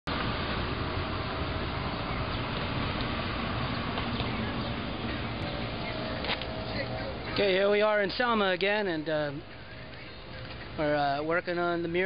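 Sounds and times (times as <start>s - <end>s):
street noise rumble and hiss: 0.1s - 12.0s.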